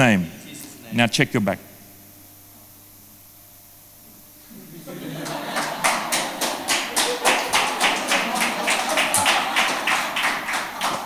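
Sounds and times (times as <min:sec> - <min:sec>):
crowd voices: 0:04.6 - 0:11.0
rhythmic hand clapping: 0:04.9 - 0:11.0.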